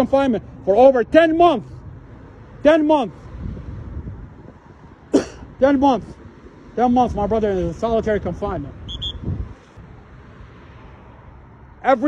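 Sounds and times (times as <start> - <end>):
traffic hiss: 1.4 - 12.0
wind buffeting microphone: 3.1 - 10.0.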